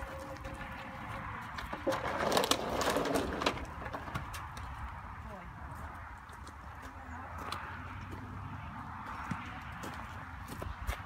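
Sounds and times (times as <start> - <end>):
horse hooves on gravel: 0.0 - 11.0.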